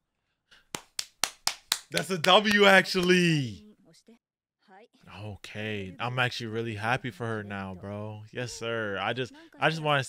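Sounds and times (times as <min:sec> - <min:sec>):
person clapping hands: 0:00.6 - 0:03.3.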